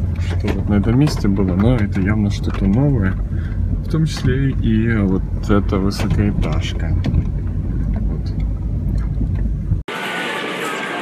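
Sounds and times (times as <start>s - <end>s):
wind buffeting microphone: 0.0s - 9.8s.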